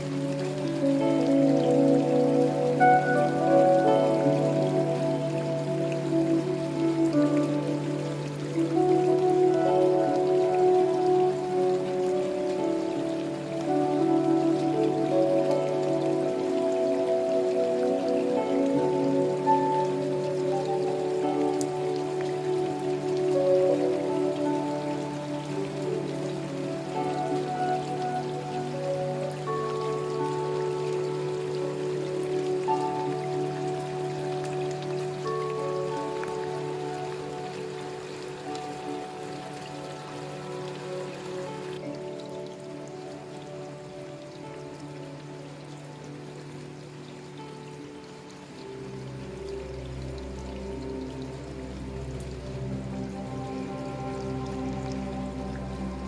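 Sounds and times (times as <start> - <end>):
slow meditation music: 0.0 - 56.0
steady rain falling: 0.0 - 56.0.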